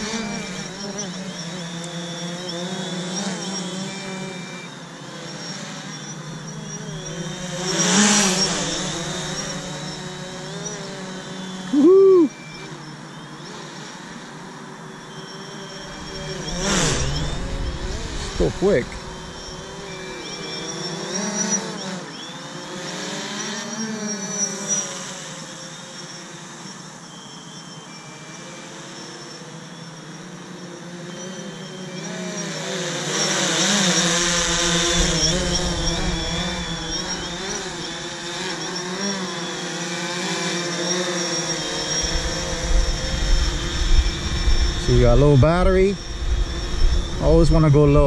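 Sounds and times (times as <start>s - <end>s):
drone propellers whining: 0.0s - 48.0s.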